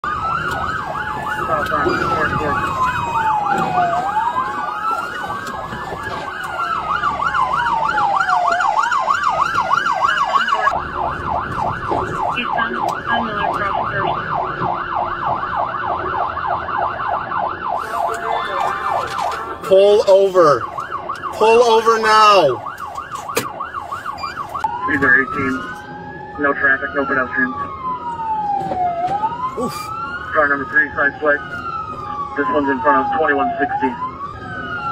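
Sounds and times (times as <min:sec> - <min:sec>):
siren fast yelp: 0:00.0 - 0:34.9
siren wail: 0:00.0 - 0:34.9.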